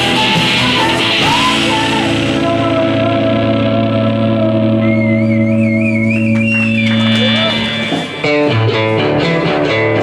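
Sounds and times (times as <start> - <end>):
electric guitars and bass ringing chord: 0.0 - 10.0
high warbling feedback tone: 4.4 - 9.2.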